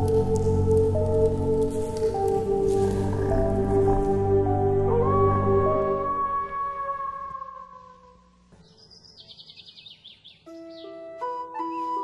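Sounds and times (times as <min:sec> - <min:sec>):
background music: 0:00.0 - 0:08.6, 0:10.4 - 0:12.0
birds chirping: 0:08.6 - 0:12.0
music of held notes: 0:10.4 - 0:12.0.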